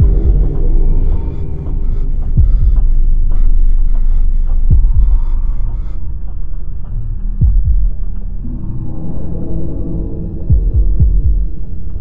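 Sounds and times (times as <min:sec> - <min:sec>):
heartbeat double thump: 0:00.0 - 0:01.4, 0:02.2 - 0:03.1, 0:04.5 - 0:06.4, 0:07.4 - 0:08.2, 0:10.5 - 0:11.6
low steady drone: 0:00.0 - 0:12.0.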